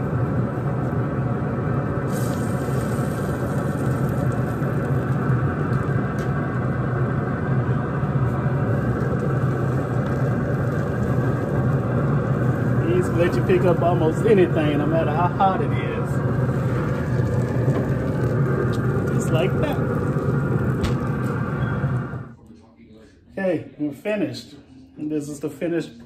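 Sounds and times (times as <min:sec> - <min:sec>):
fan humming: 0:00.0 - 0:22.4.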